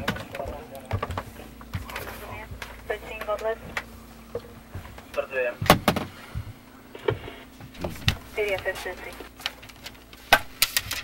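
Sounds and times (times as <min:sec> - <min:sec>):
airplane cabin hum: 0:00.0 - 0:11.0.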